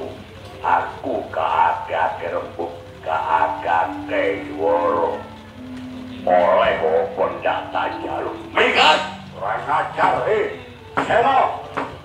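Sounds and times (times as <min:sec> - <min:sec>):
gliding vocal cry: 0:00.0 - 0:11.6
low held note: 0:02.8 - 0:10.9.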